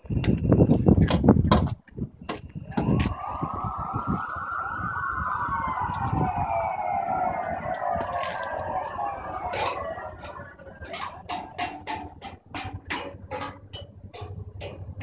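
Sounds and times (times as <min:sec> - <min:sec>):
emergency vehicle siren wailing: 0:02.6 - 0:15.0
sharp knocks: 0:09.5 - 0:15.0.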